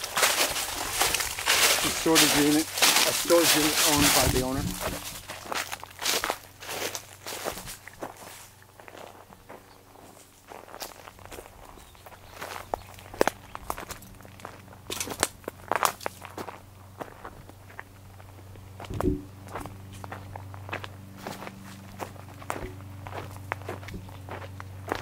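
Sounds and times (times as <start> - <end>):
footsteps on dry leaves: 0.0 - 25.0.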